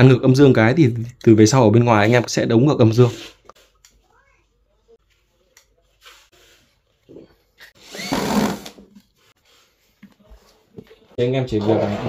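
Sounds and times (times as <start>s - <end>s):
electric screwdriver whirring: 7.8s - 8.8s.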